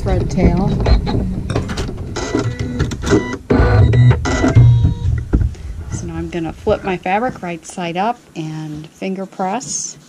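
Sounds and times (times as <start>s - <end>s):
machine motors humming: 0.0s - 7.6s.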